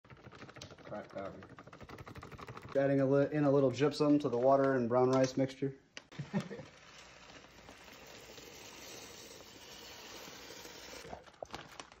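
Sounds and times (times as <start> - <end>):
clicks and rattles of grains: 0.0 - 2.9, 6.2 - 12.0
rice pouring into a pot: 6.6 - 11.9.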